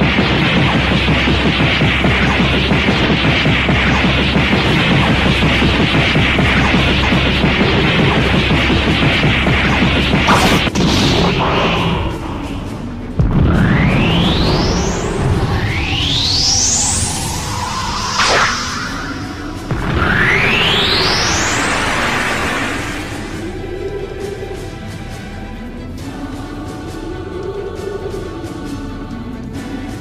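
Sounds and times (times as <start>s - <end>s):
sharp impacts: 0.0s - 23.6s
blast roar: 0.0s - 23.7s
rising whooshing sweeps: 0.0s - 24.0s
background music: 0.0s - 30.0s
sharp crack: 10.2s - 12.6s, 17.5s - 23.4s.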